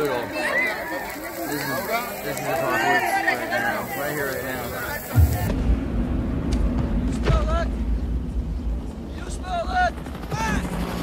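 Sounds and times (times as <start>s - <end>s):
people talking and calling out: 0.0s - 5.7s.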